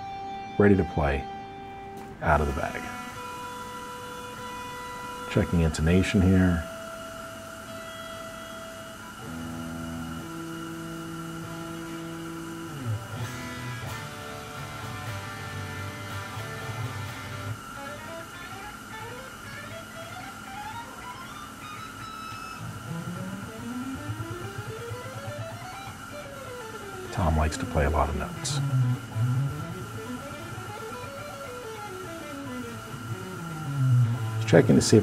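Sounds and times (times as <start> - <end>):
electric guitar playing: 0.0 - 35.0.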